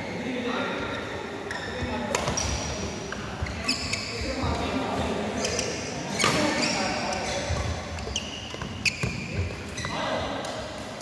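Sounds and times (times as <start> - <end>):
court shoes squeaking: 0.8 - 11.0
racket hitting shuttlecock: 2.1 - 2.7, 6.1 - 9.5.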